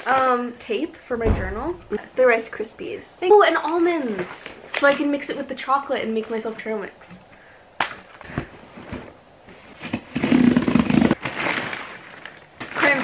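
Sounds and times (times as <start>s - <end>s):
cardboard packaging rustling: 8.0s - 13.0s.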